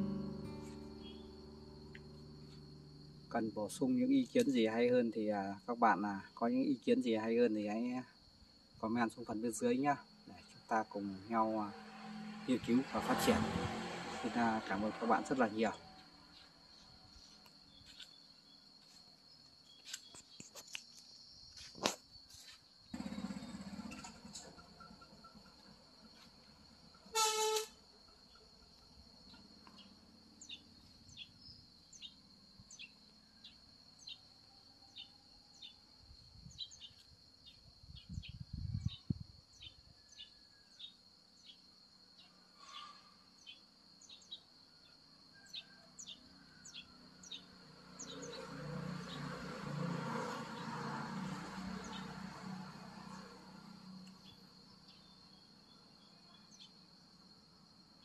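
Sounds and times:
high-pitched insect drone: 0.0 - 4.2, 9.6 - 19.0
short insect chirps: 0.0 - 4.9, 7.6 - 49.4, 51.5 - 58.0
horn honk: 27.1 - 27.8.

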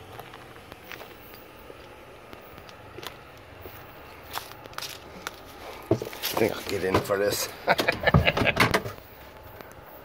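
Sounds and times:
footsteps on gravel and grass: 0.0 - 7.4.

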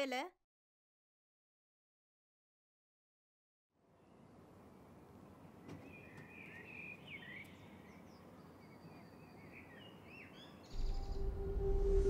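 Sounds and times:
birds chirping: 5.5 - 11.7
low swell with steady hum: 10.7 - 12.0.

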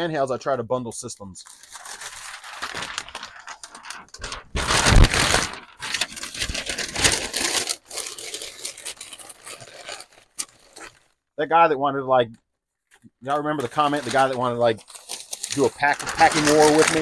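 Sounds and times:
wrapping sheet rustling: 1.5 - 11.1, 13.4 - 17.0.

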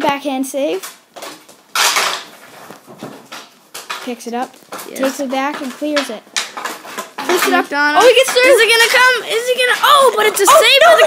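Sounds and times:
hockey sticks clacking ball: 0.0 - 11.0
sticks scraping on concrete: 0.7 - 11.0.

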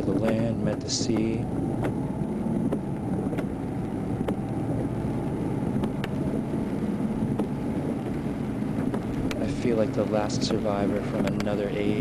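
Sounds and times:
low rumble: 0.0 - 12.0
faint clicks: 10.3 - 11.7.

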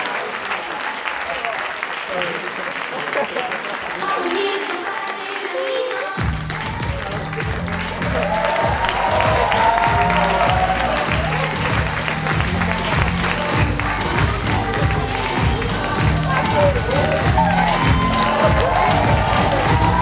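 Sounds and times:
audience applauding: 0.0 - 20.0
music with heavy beat: 6.2 - 20.0.

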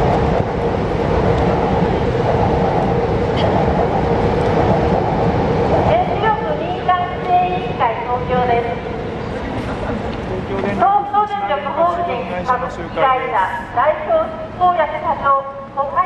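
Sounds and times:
constant hum: 0.0 - 16.0
passing traffic rumble: 0.0 - 16.0.

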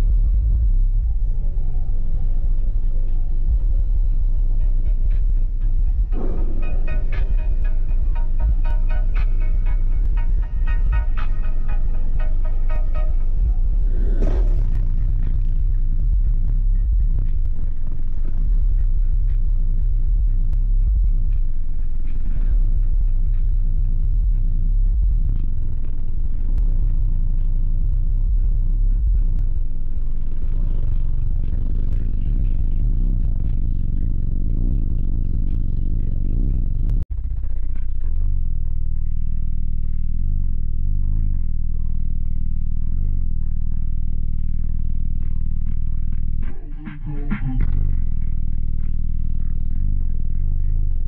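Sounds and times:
bass-heavy music from subwoofers: 0.0 - 51.0.

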